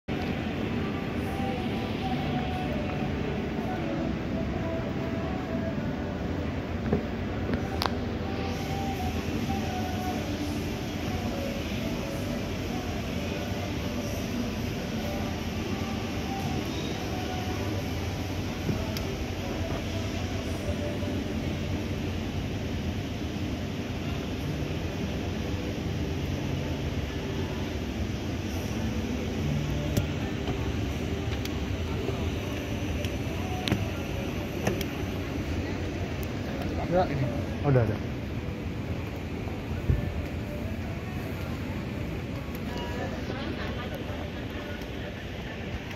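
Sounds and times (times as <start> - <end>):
escalator drone: 0.1 - 45.9.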